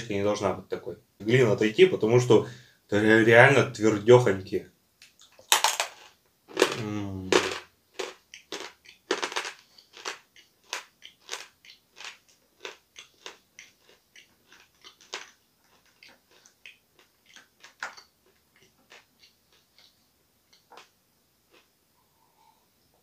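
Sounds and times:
crisp crunching chewing: 5.3s - 20.9s
person humming: 6.8s - 7.5s.

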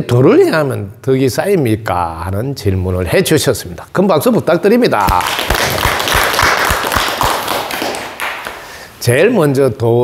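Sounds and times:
rhythmic clapping: 5.0s - 8.7s.

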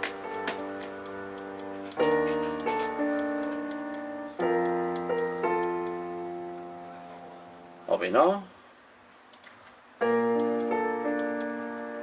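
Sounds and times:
metronome ticking: 0.0s - 6.0s, 10.3s - 11.6s
keyboard chords: 0.0s - 8.1s, 10.0s - 12.0s.

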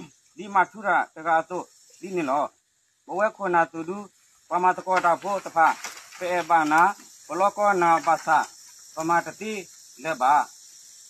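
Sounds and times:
man reading aloud: 0.0s - 10.6s
insects droning: 0.0s - 11.0s.

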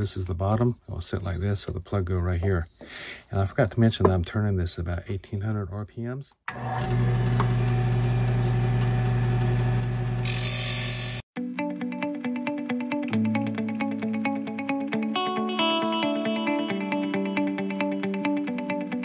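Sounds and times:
wood lathe running: 6.5s - 11.2s
gouge cutting spinning wood: 6.6s - 11.2s
plucked guitar music: 11.4s - 19.0s.

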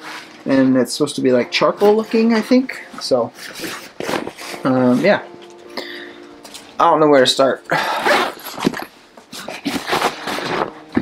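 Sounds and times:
nylon bag rustling and bumping: 3.0s - 5.2s, 7.7s - 11.0s.

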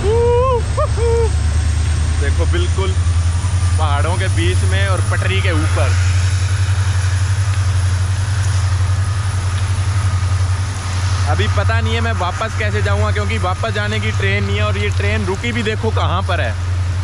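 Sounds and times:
diesel locomotive engine idling: 0.0s - 17.0s.

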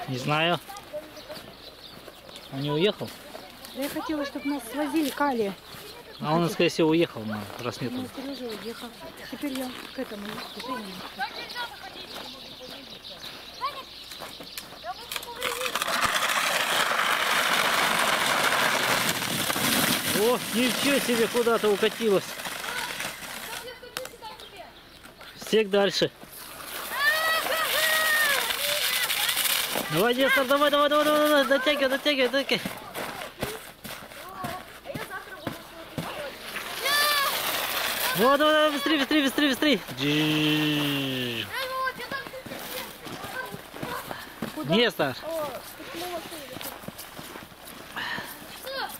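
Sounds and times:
faint children's voices: 0.0s - 15.9s, 22.6s - 25.3s, 26.7s - 47.3s, 47.9s - 48.9s
sledding pad scraping over snow: 14.9s - 24.4s, 26.2s - 48.9s
high-pitched child calling: 36.8s - 37.4s.

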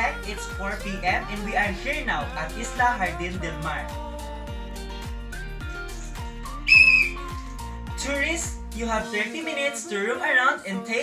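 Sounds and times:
background music with steady beat: 0.0s - 11.0s
high whistle blast: 6.7s - 7.3s.

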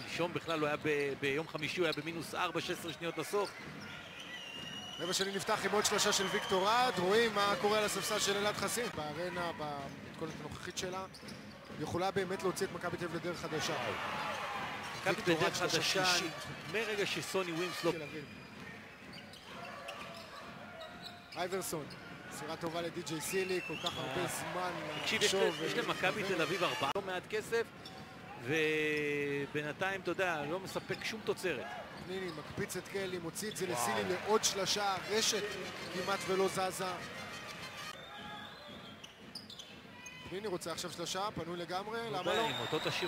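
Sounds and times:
murmur of arena crowd: 0.0s - 43.0s.

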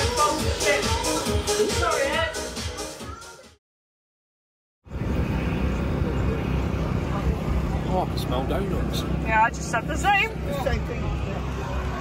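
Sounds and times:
faint voices: 4.9s - 12.0s
low rumble of background noise: 4.9s - 12.0s.

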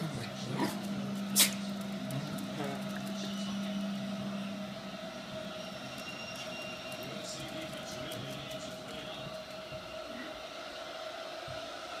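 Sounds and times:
low background noise: 0.0s - 12.0s
steady hum: 0.0s - 12.0s.

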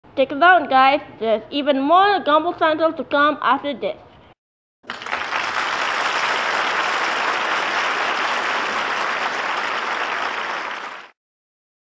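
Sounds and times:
audience applause: 4.9s - 11.2s.

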